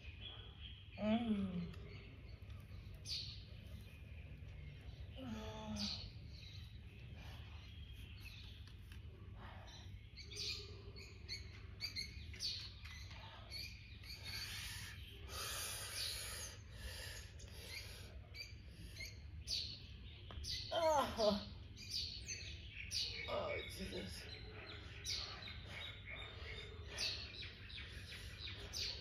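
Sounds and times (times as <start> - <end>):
birds chirping and calling: 0.0 - 29.0.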